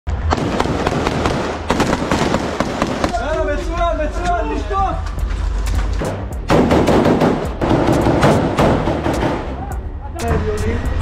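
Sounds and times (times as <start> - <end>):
rapid rifle shots: 0.3 - 3.3, 6.5 - 9.4.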